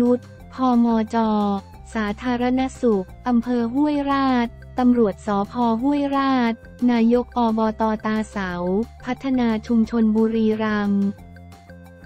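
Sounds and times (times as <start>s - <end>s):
narrator reading: 0.0s - 11.2s
quiet background music: 0.0s - 12.0s.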